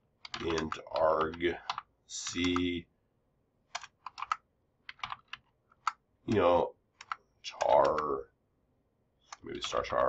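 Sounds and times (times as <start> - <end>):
keyboard typing: 0.2 - 2.8, 3.7 - 8.2, 9.2 - 10.0.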